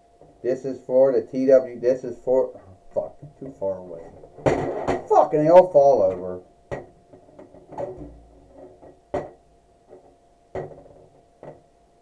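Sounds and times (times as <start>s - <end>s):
plastic toy figures fumbling: 4.2s - 5.3s.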